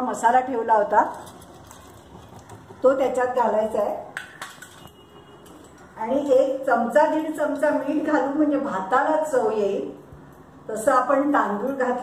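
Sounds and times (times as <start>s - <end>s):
steel utensils clinking: 1.0s - 2.9s, 3.8s - 6.3s.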